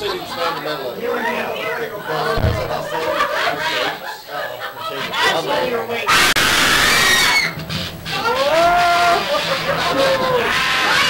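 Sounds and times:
rising vocal cry: 0:08.2 - 0:09.2.

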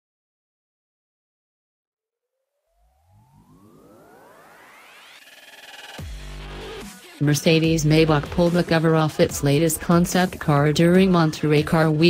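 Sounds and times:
synthesized rising sweep: 0:02.4 - 0:08.7.

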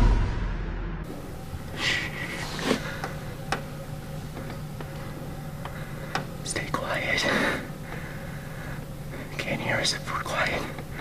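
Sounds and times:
steady low hum: 0:00.0 - 0:11.0
person whispering: 0:06.5 - 0:07.5, 0:09.3 - 0:10.8.

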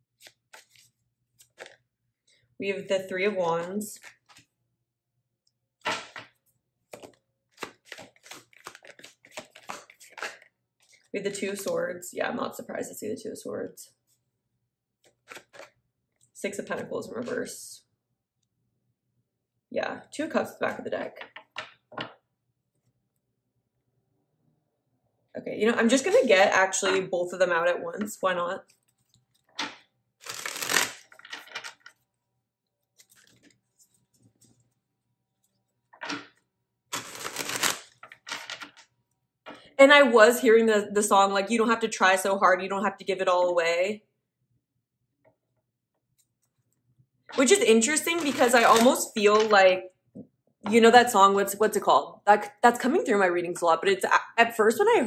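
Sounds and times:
cards being shuffled: 0:00.1 - 0:01.8, 0:04.0 - 0:04.5, 0:05.8 - 0:11.1, 0:15.0 - 0:15.7, 0:28.6 - 0:32.0, 0:32.9 - 0:34.6, 0:36.0 - 0:38.9, 0:47.4 - 0:49.5
papery card swipe: 0:30.2 - 0:31.2, 0:36.9 - 0:37.9.

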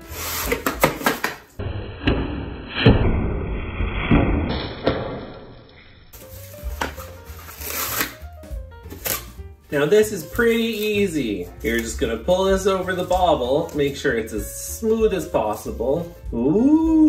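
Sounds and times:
cling wrap crinkling: 0:06.2 - 0:08.2.

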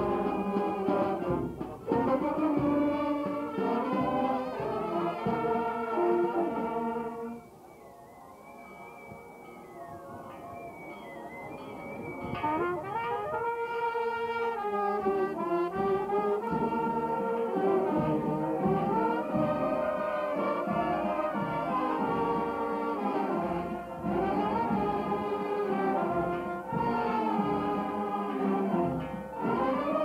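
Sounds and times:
brass band playing: 0:00.0 - 0:07.6, 0:11.6 - 0:30.0.

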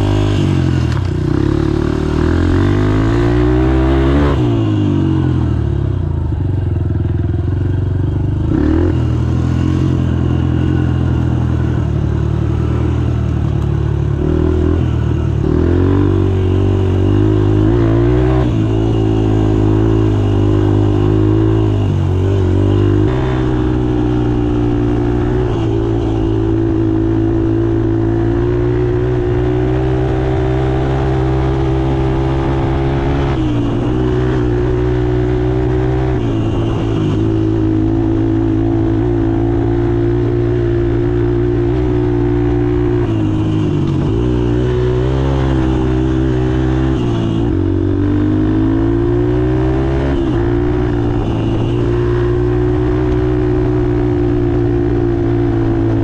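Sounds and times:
motorbike engine accelerating: 0:00.0 - 0:56.0.

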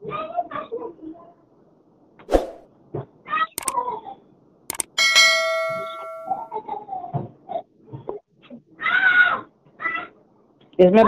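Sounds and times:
click: 0:04.7 - 0:04.9
bright bell ding: 0:04.8 - 0:06.5.

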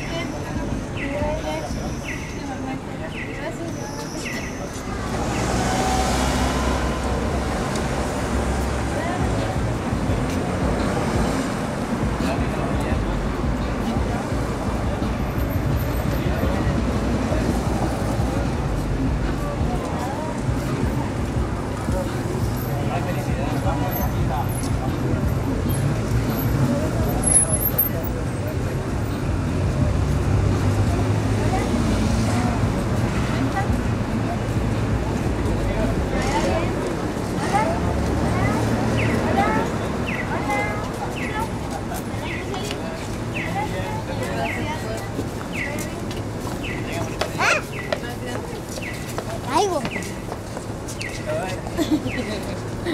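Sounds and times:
people talking in background: 0:00.0 - 0:52.9
vehicle engines: 0:00.0 - 0:52.9.

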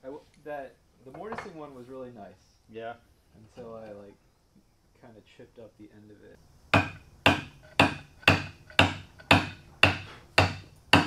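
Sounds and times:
wooden mallet striking chisel: 0:06.7 - 0:11.0.

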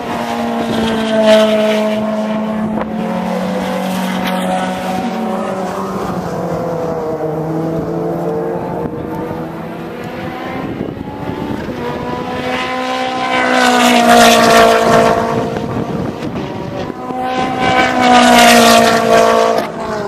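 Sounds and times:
sports cars passing at speed: 0:00.0 - 0:20.0.

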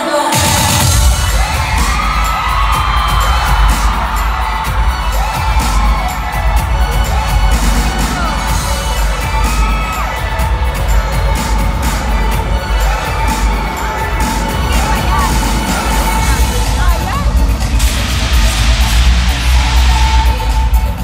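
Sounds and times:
audience screaming and cheering: 0:00.0 - 0:21.0
loud live pop music: 0:00.0 - 0:21.0.

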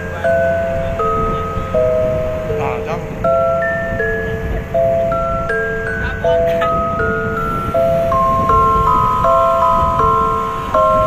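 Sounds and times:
bell-like mallet percussion chords: 0:00.0 - 0:11.0.

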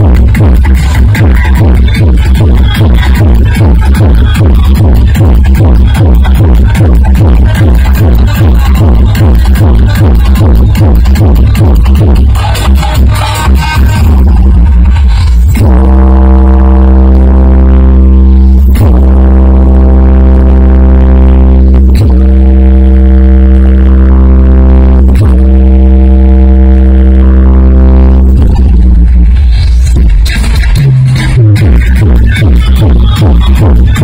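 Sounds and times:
electronic dance music: 0:00.0 - 0:34.0.

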